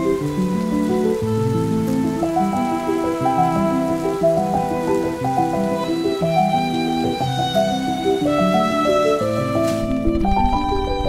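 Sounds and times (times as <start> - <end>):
gentle soundtrack music: 0.0 - 11.0.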